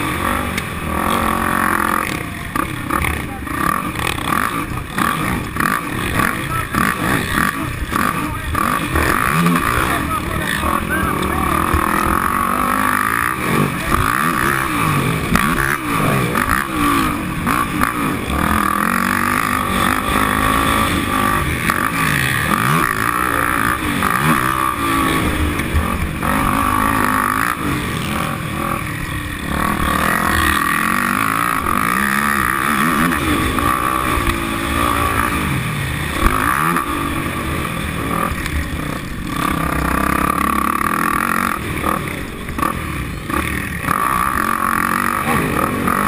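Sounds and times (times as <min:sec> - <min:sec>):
quad engine revving: 0:00.0 - 0:46.0.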